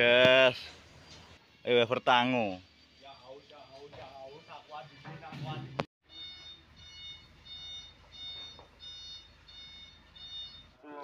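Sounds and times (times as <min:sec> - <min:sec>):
reversing alarm beeping: 0:06.0 - 0:10.8.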